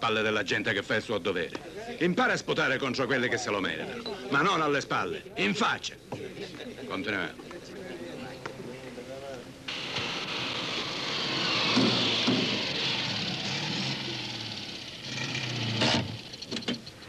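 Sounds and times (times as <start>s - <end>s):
car engine driving: 9.7s - 17.0s.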